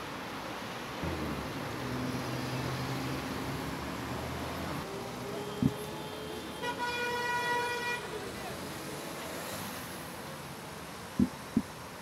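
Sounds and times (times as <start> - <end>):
traffic on a wet road: 0.0 - 12.0
car horn: 5.3 - 8.2.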